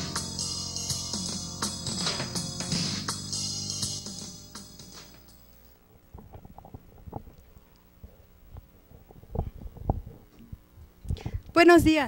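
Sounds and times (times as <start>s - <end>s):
microphone handling knocks and rubs: 8.5s - 10.6s.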